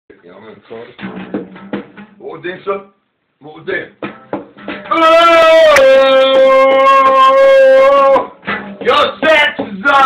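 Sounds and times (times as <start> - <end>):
strummed acoustic guitar: 1.0 - 2.3, 4.0 - 5.4, 8.2 - 10.0.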